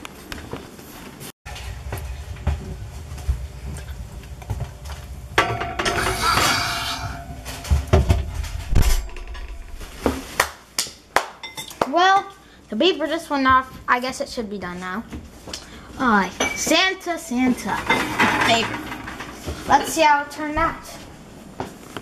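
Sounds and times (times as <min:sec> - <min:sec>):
mug clinking on oven rack: 0:05.4 - 0:07.8.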